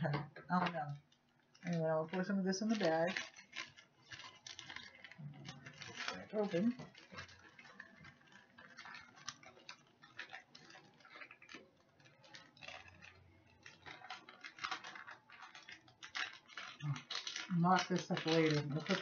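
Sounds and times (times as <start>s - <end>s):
plastic bag crinkling: 0.0s - 19.0s.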